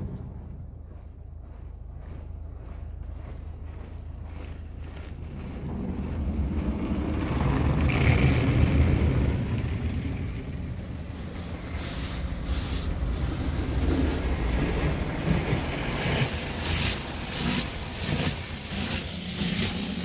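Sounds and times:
low rumbling rush of spray: 5.2 - 20.0
car wash water jets spraying: 5.8 - 20.0.

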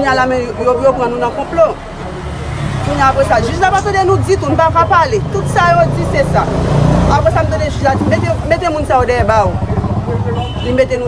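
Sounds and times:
low rumble of road traffic: 0.0 - 11.0
woman's voice: 2.8 - 9.5.

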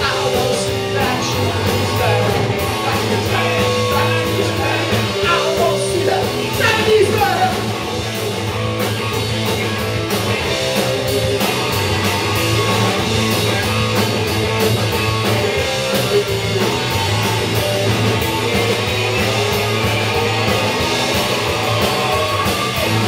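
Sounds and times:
drum kit beat: 0.0 - 23.0
electric guitar: 0.0 - 23.0.

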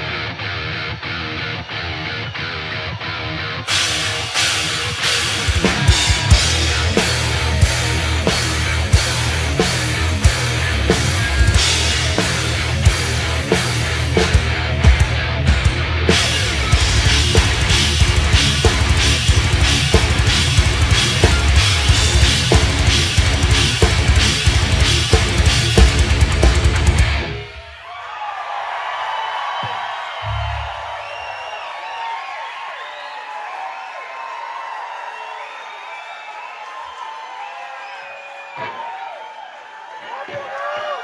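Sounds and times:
heavy rock band playing: 0.0 - 27.7
crowd cheering and whistling: 0.0 - 41.0.

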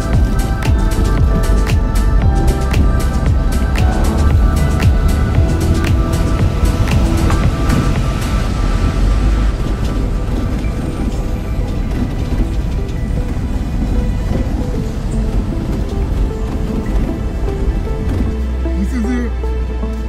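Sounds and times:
background music: 0.0 - 20.0
vehicle driving rumble: 0.0 - 20.0.

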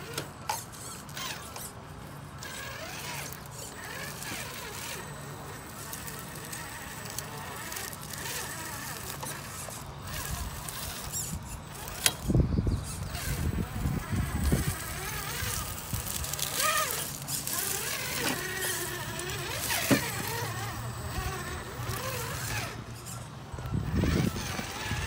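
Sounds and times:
rc car electric motor whining: 0.0 - 25.0.

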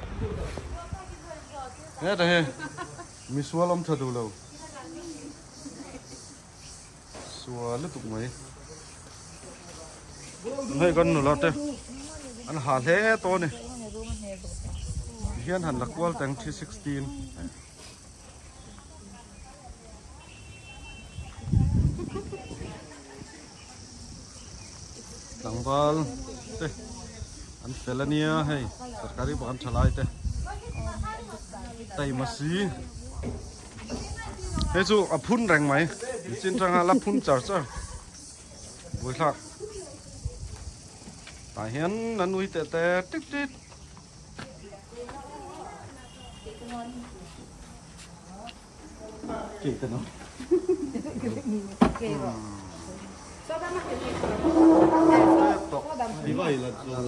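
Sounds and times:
people talking casually: 0.0 - 57.0.

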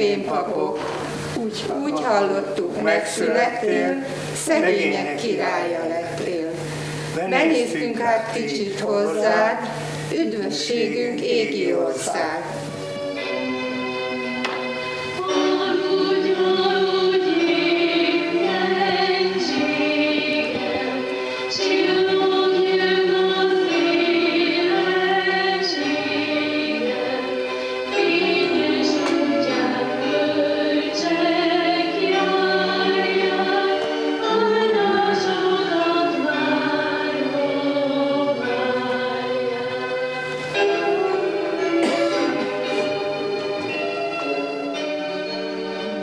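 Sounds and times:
group of voices singing: 0.0 - 12.7, 15.2 - 43.8.

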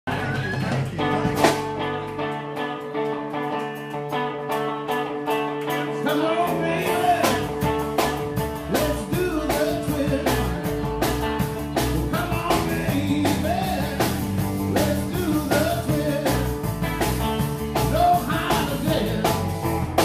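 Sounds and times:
electric bass: 0.1 - 20.0
electric guitar: 0.1 - 20.0
drum beat: 7.1 - 20.0.

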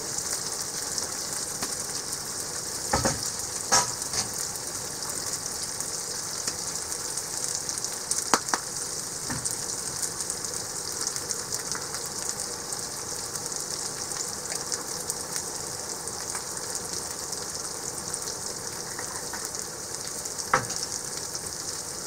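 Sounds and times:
onions sizzling in oil: 0.0 - 22.0.

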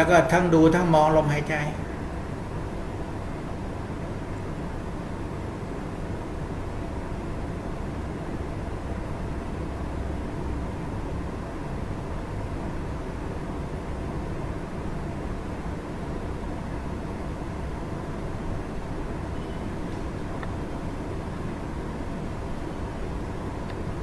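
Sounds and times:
faint hum: 0.0 - 24.0.

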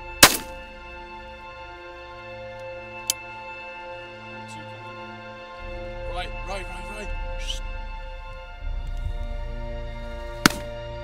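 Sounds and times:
background music sustained notes: 0.0 - 11.0
loud shotgun shot: 0.2 - 0.6, 10.4 - 10.8
faint sharp crack: 10.4 - 10.8.

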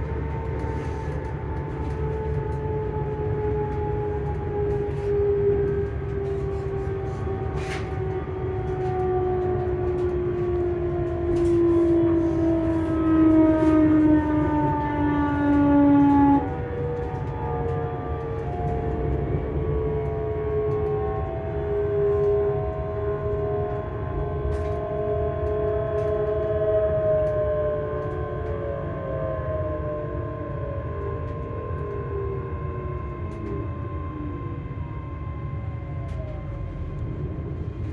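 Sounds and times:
electric train motors whining: 0.0 - 26.3.

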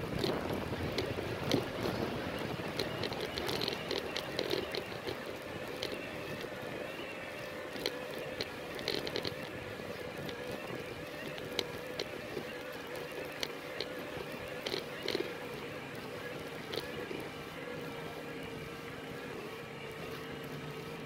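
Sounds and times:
wind noise on microphone: 0.0 - 6.8
bike rolling over stone paving: 0.0 - 21.0
faint steady whine: 0.0 - 21.0.

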